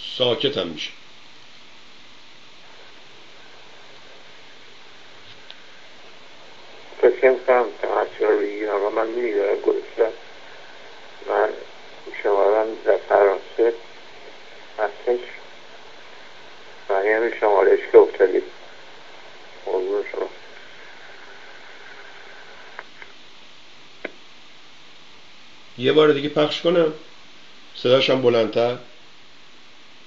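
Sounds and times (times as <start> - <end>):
man's voice over phone line: 0.0 - 1.0, 6.8 - 15.6, 16.8 - 18.7, 19.5 - 20.5, 25.8 - 27.1, 27.8 - 29.0
phone line hiss: 1.9 - 30.0.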